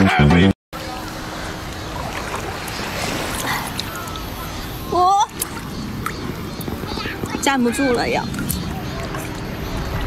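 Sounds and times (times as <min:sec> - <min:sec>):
sea water rushing: 0:00.8 - 0:10.0
wind on microphone: 0:01.9 - 0:10.0.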